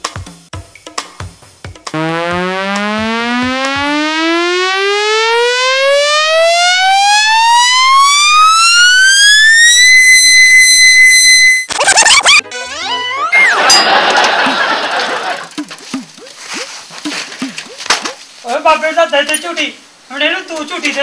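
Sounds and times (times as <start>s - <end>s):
buzzy electronic tone rising in pitch: 1.9s - 13.6s.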